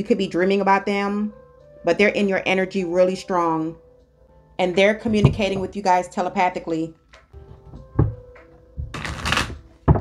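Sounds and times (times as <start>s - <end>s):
knock: 5.1s - 5.8s
playing cards shuffling: 8.9s - 9.7s.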